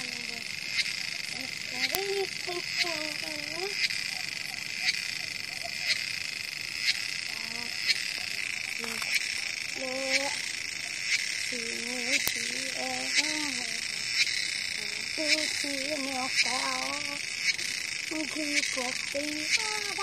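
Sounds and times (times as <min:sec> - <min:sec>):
faint voices: 0:00.0 - 0:00.6, 0:01.2 - 0:03.8, 0:14.8 - 0:20.0
high-pitched insect or frog drone: 0:00.0 - 0:20.0.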